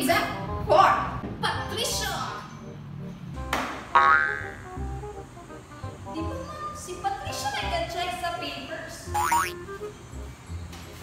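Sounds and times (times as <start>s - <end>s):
background music: 0.0s - 11.0s
cartoon springy boing: 3.9s - 4.6s, 9.2s - 9.5s.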